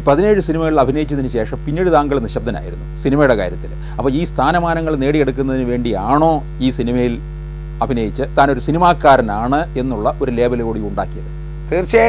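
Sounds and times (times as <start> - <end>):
man speaking: 0.0 - 7.2, 7.8 - 11.9
low electrical mains hum: 0.0 - 12.0.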